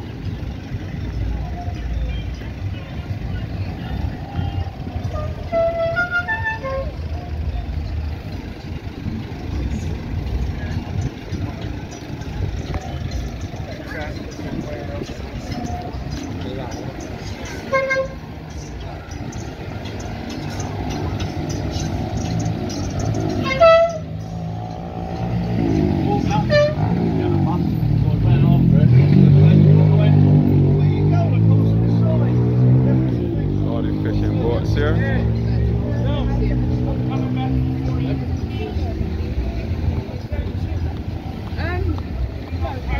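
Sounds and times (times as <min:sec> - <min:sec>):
road traffic passing: 0:00.0 - 0:42.9
car horn toots: 0:05.0 - 0:07.0, 0:17.5 - 0:18.3, 0:23.3 - 0:24.2, 0:26.3 - 0:27.0.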